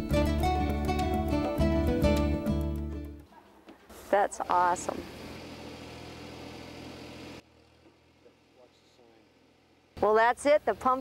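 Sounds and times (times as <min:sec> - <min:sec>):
engine idling: 0:04.5 - 0:10.8.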